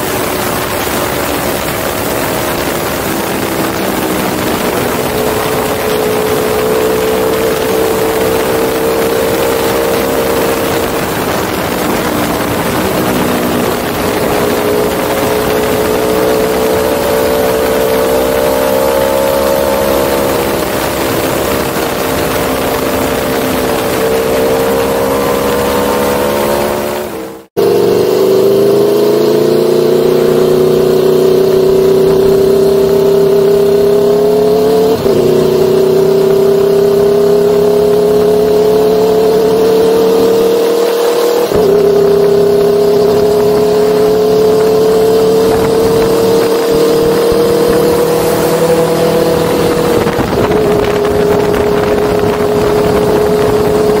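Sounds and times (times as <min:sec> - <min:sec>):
motorcycle engine running: 0:00.0 - 0:54.0.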